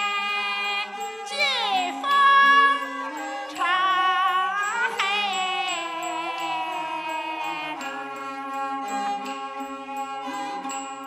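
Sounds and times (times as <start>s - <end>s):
folk music ensemble: 0.0s - 11.0s.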